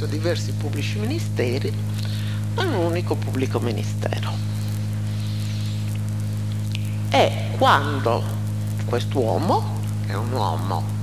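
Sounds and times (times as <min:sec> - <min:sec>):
electrical mains hum: 0:00.0 - 0:11.0
faint hiss: 0:00.0 - 0:11.0.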